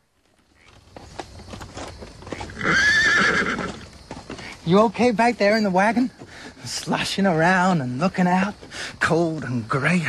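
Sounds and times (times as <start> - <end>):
hooves clip-clopping: 0.0 - 10.0
horse whinnying: 2.3 - 3.9.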